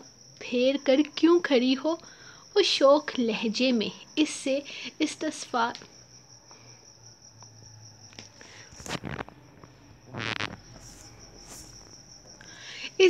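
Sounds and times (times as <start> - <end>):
cricket chirring: 0.0 - 13.0.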